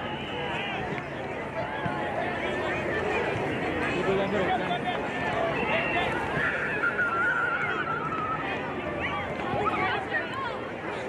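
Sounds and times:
chatter of players and spectators: 0.0s - 11.0s.

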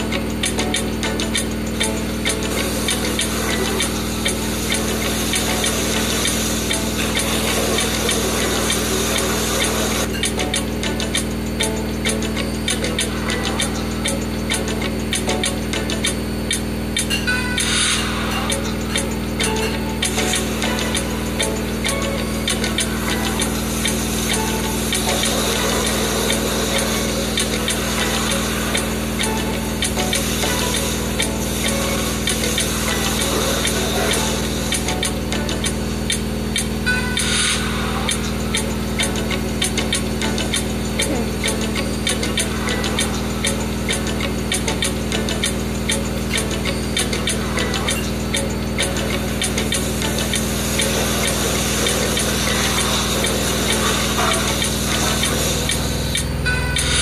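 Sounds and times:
music playing in room: 0.0s - 57.0s
washing machine spinning: 0.0s - 57.0s.

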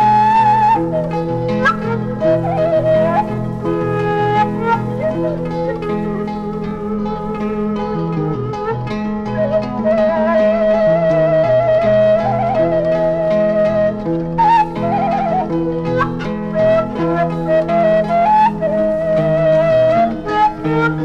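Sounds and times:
bamboo flute melody: 0.0s - 21.0s
plucked zither: 0.0s - 21.0s.

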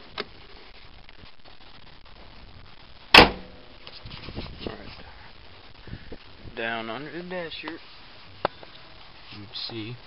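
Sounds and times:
loud sharp bang: 3.1s - 3.7s.

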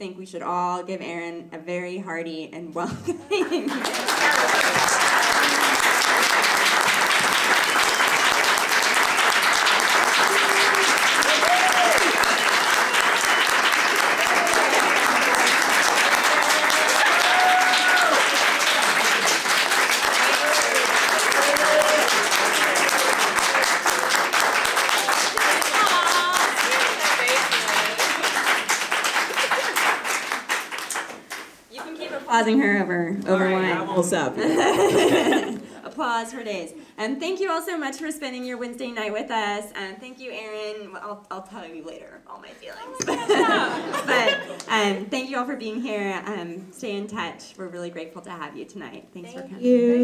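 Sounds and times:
audience applauding: 3.6s - 32.0s, 43.0s - 44.7s.

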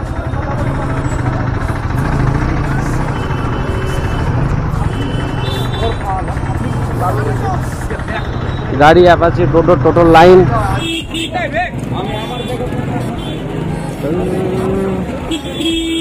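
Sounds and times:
motorcycle engine running: 0.0s - 16.0s
people's voices: 0.0s - 16.0s
street traffic: 0.0s - 16.0s.

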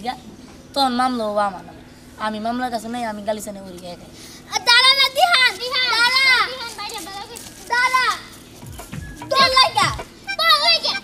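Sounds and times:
girl calling out sing-song: 9.2s - 11.0s.

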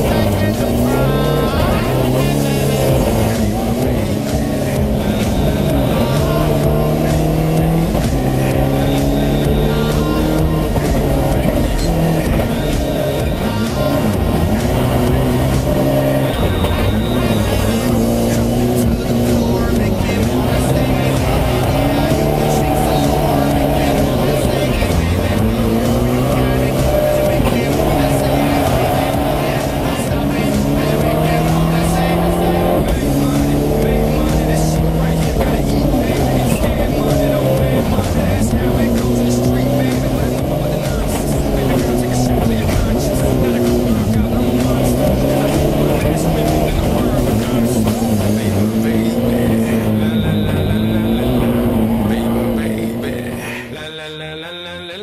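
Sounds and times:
race car engine revving: 0.0s - 53.7s
background music: 0.0s - 55.0s.

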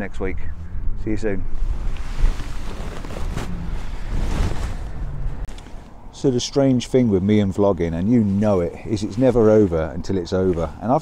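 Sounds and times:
wind buffeting microphone: 0.0s - 6.1s.

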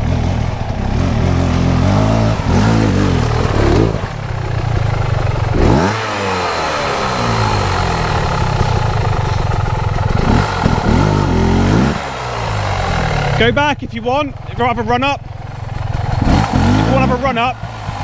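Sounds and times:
motorcycle engine revving: 0.0s - 18.0s.

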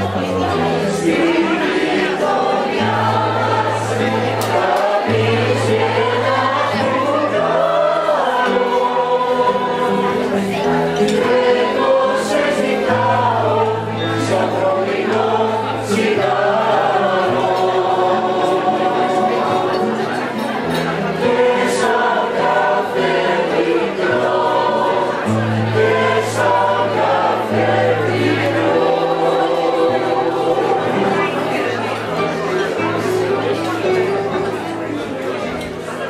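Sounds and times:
mixed choir singing: 0.0s - 36.0s.

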